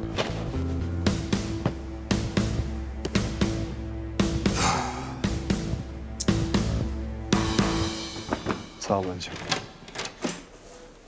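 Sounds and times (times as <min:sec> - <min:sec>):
man speaking: 0:08.8 - 0:09.5.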